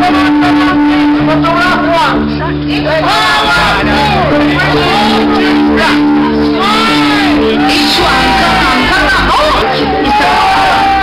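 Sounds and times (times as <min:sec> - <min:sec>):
loud live music: 0:00.0 - 0:11.0
crowd shouting: 0:02.7 - 0:11.0.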